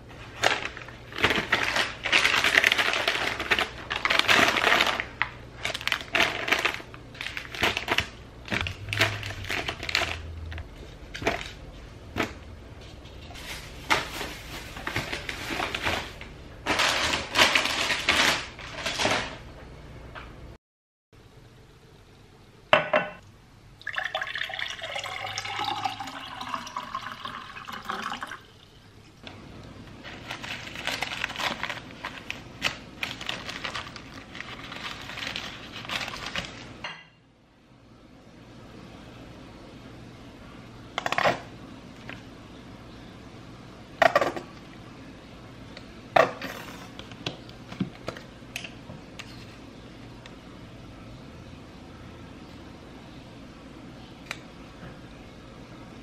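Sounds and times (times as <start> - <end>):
plastic snack packets crinkling: 0.3 - 11.6, 13.3 - 19.4, 29.9 - 36.8
glass knocking on stone countertop: 22.8 - 23.2
water pouring into glass: 23.8 - 28.6.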